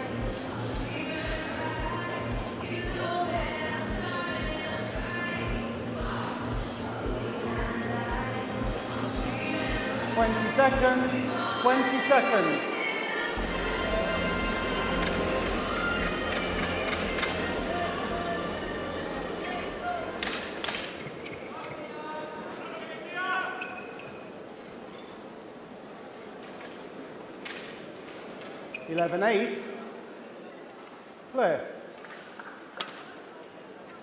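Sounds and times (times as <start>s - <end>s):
music over sound system: 0.0s - 20.2s
background voices: 0.0s - 23.0s.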